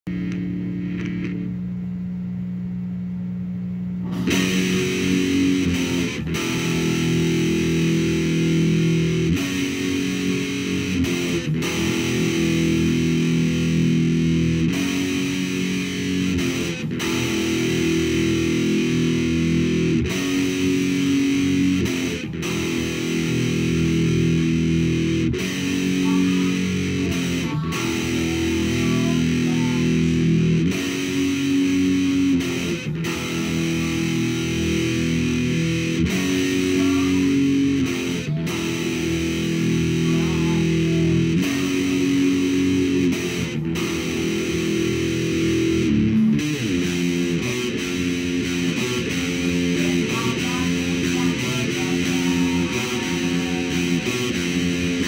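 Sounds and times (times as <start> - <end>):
distorted electric guitar riff: 0.0 - 1.8, 4.0 - 55.0.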